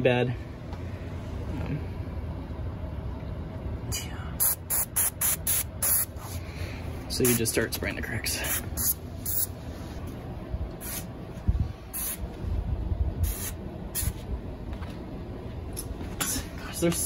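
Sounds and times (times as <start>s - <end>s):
sprayer hissing in bursts: 11.9s - 12.2s, 13.2s - 14.1s.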